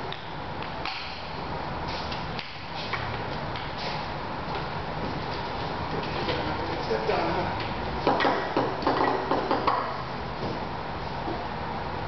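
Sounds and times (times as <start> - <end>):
background room noise: 0.0 - 12.0
footsteps on concrete floor: 3.6 - 6.4
ping-pong ball bouncing: 8.0 - 10.0.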